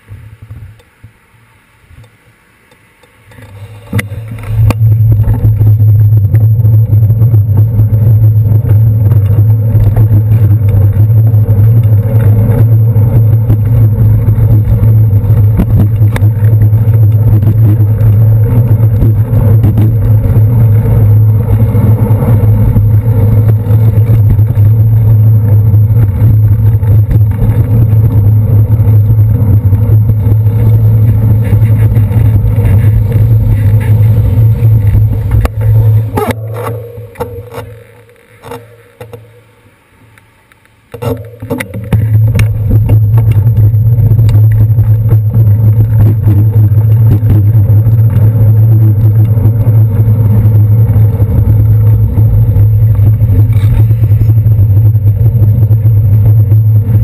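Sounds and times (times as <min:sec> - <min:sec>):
city traffic: 0:00.0 - 0:57.0
wind and road rumble: 0:00.0 - 0:57.0.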